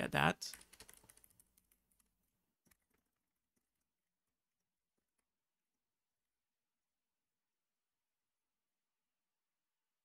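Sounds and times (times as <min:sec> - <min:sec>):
computer keyboard typing: 0:00.5 - 0:03.9.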